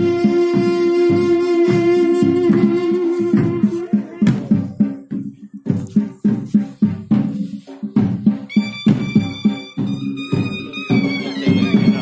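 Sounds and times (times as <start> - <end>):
wind instrument held note: 0.0 - 4.0
high held wind note: 0.0 - 4.2
drums beating steady rhythm: 0.0 - 12.0.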